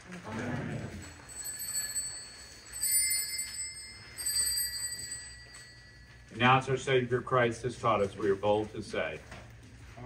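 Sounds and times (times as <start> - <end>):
altar bells ringing: 0.7 - 8.4.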